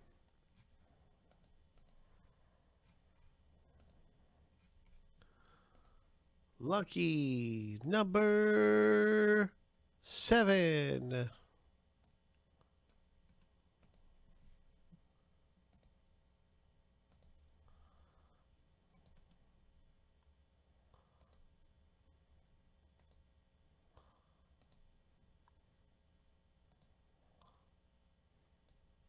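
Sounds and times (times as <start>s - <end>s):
faint computer mouse clicks: 1.2s - 2.0s, 3.7s - 4.0s, 12.0s - 14.0s, 15.7s - 16.0s, 17.1s - 17.4s, 24.5s - 25.6s.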